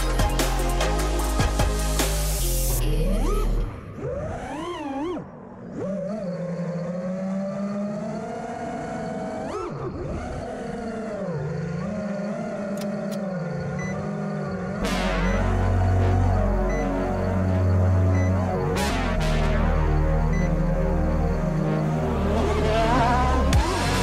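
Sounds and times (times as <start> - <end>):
drone motors whining: 0.0 - 24.0.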